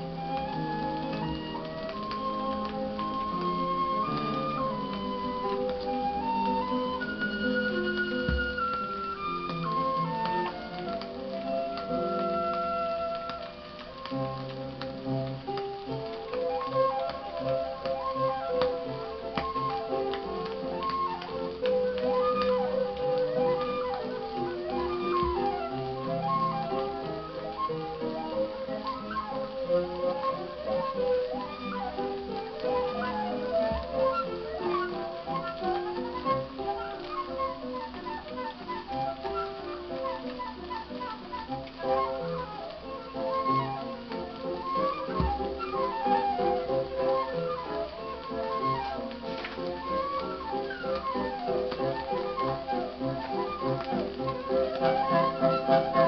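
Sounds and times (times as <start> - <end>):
flute playing a melody: 0.0 - 56.0
piano accompaniment: 0.0 - 56.0.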